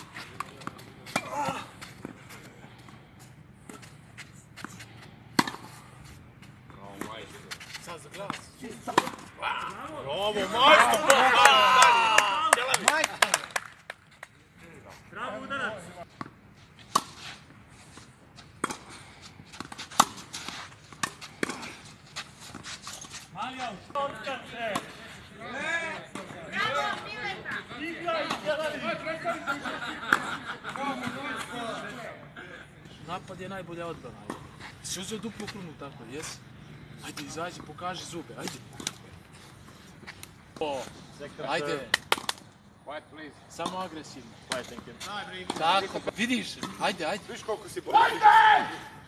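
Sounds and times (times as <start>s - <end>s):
men talking excitedly: 6.7s - 13.6s, 14.6s - 16.0s, 23.4s - 39.0s, 40.6s - 42.0s, 42.8s - 49.0s
man shouting: 47.8s - 49.0s.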